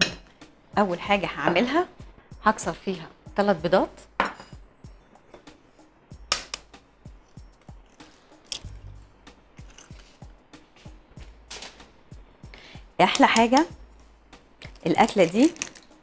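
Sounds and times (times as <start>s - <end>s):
soft background music: 0.0s - 16.0s.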